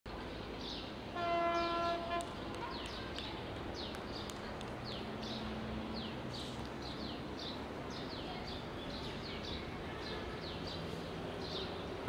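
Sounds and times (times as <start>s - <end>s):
train horn blast: 1.1s - 2.3s.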